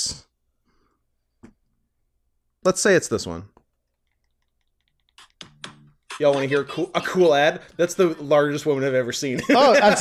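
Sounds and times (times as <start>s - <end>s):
keyboard typing and clicking: 3.6s - 6.8s.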